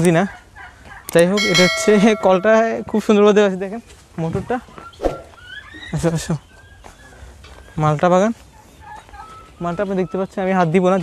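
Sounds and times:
chickens chirping: 4.7 - 11.0.

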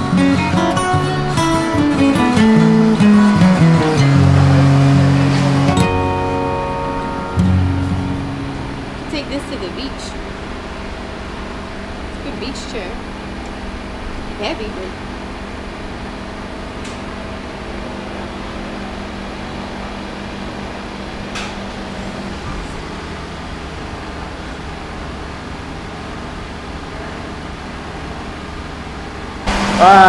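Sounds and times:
music: 0.0 - 9.4
mechanical hum: 0.0 - 30.0
voices: 9.1 - 10.2, 12.2 - 13.1, 14.4 - 15.0, 29.7 - 30.0.

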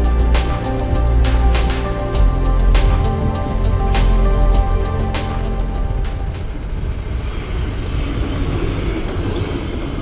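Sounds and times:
background music: 0.0 - 7.0
train rumbling over rails: 0.0 - 10.0.

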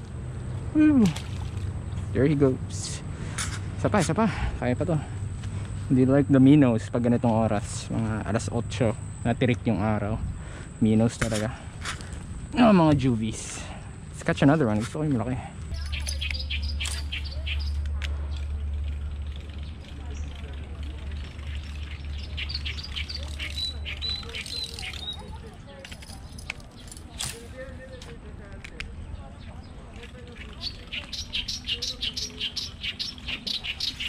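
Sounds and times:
steady low hum: 0.0 - 34.0
small birds chirping: 0.4 - 28.2, 28.8 - 34.0
bird trill: 15.7 - 18.6, 19.5 - 25.4, 30.3 - 34.0.

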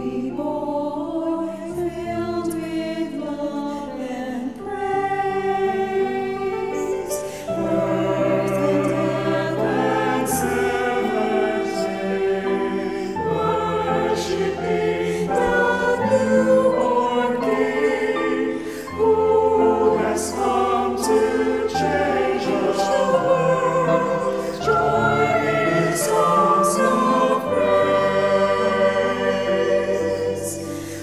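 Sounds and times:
mixed choir singing in harmony: 0.0 - 31.0.

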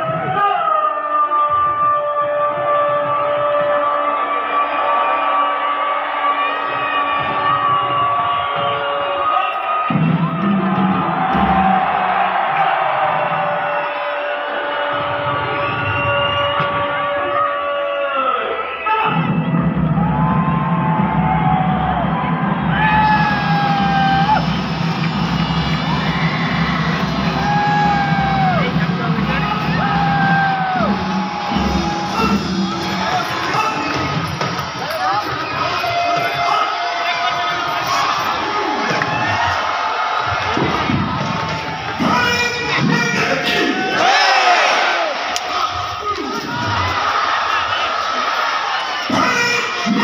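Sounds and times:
crowd cheering and whooping: 0.0 - 50.0
music from loudspeakers: 9.8 - 16.8, 19.1 - 38.5.

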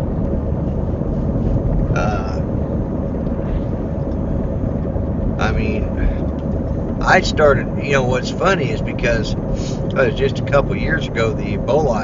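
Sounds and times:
road and engine rumble: 0.0 - 12.0
person vocal sound: 2.0 - 2.4.

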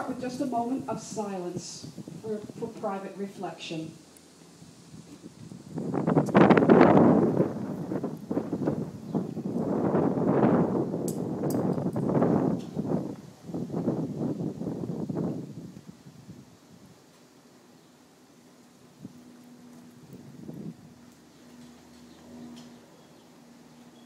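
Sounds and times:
wind buffeting microphone: 0.0 - 17.2, 18.9 - 23.8.

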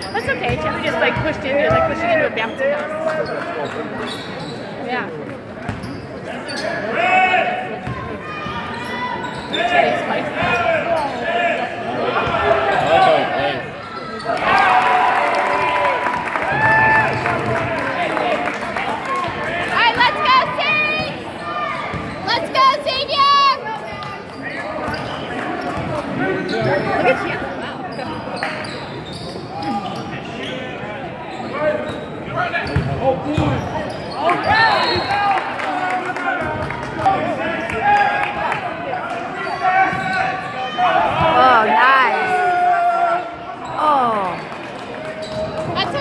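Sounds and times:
spectators chattering: 0.0 - 46.0.

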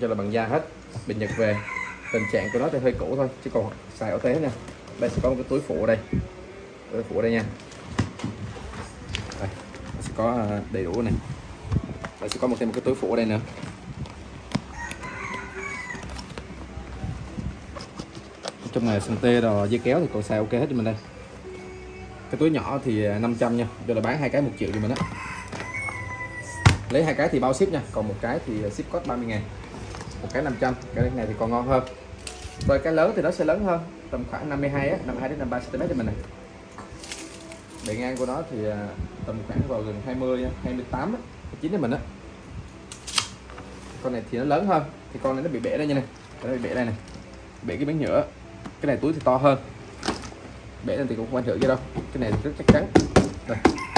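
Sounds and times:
tape measure blade retracting: 42.9 - 43.4.

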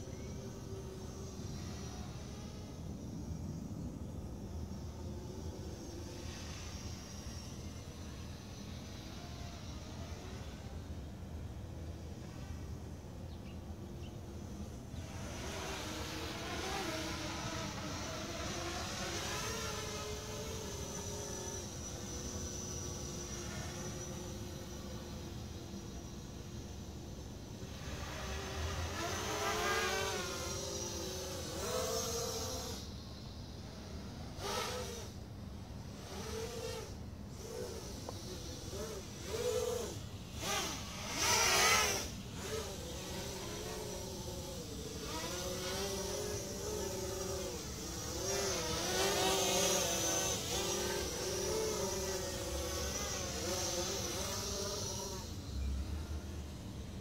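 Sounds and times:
quadcopter propellers buzzing: 0.0 - 57.0.

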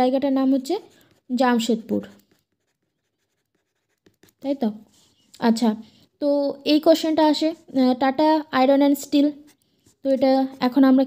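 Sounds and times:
woman speaking: 0.0 - 2.2, 4.4 - 11.0
pen scratching paper: 0.4 - 5.2, 9.1 - 10.7.

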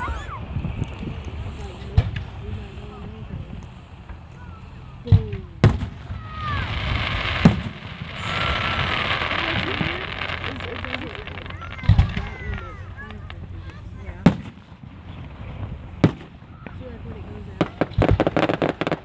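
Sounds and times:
spectators' voices: 0.0 - 18.9
fireworks hissing and crackling: 0.0 - 19.0.

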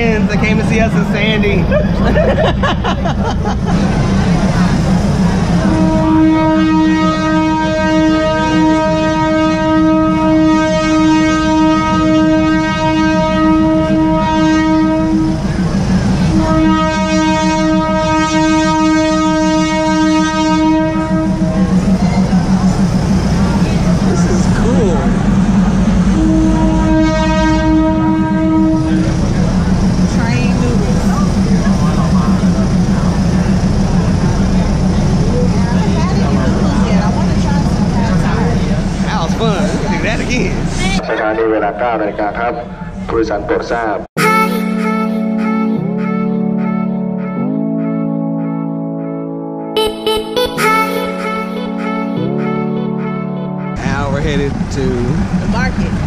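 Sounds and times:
train engine droning: 0.0 - 56.0
train horn blasts: 5.5 - 22.3, 25.9 - 30.6, 44.2 - 48.2, 49.7 - 54.0.

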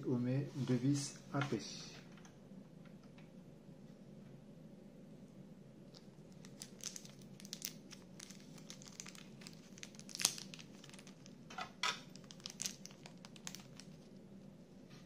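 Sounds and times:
plastic bag crinkling: 6.0 - 11.4, 12.0 - 14.1.

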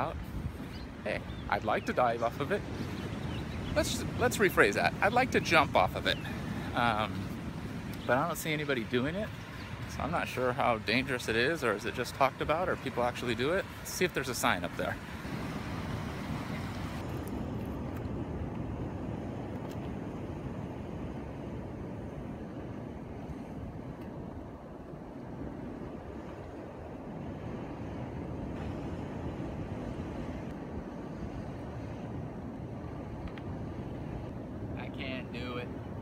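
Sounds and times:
ocean surf: 0.0 - 36.0
wind rumbling on microphone: 0.0 - 36.0.

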